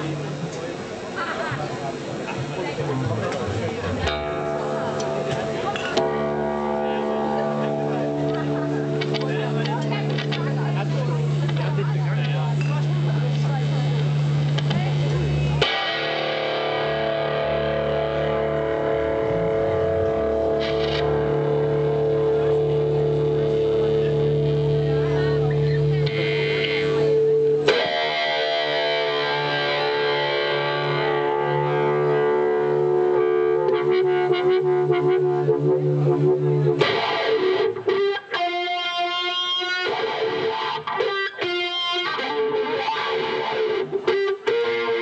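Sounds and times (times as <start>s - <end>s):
electric guitar drone tones: 2.4s - 45.0s.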